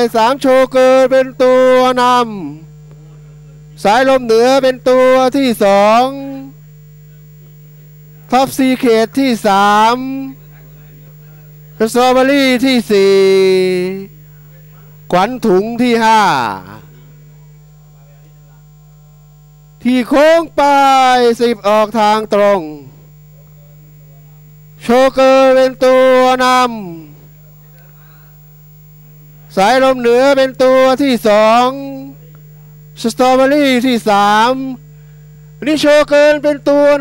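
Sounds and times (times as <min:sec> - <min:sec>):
man talking: 0:00.0 - 0:02.7, 0:03.8 - 0:06.6, 0:08.2 - 0:16.9, 0:19.8 - 0:28.3, 0:29.4 - 0:32.3, 0:33.0 - 0:34.8, 0:35.6 - 0:37.0
electrical mains hum: 0:00.0 - 0:37.0
race caller excited voice: 0:35.6 - 0:37.0.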